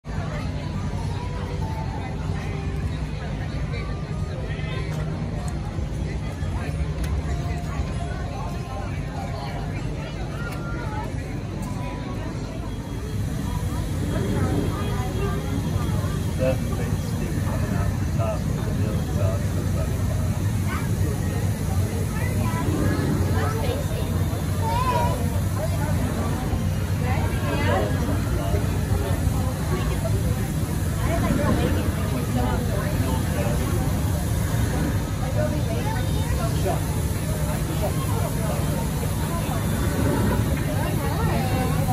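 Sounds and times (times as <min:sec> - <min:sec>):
crowd chatter: 0:00.0 - 0:41.9
low engine hum: 0:00.0 - 0:41.9.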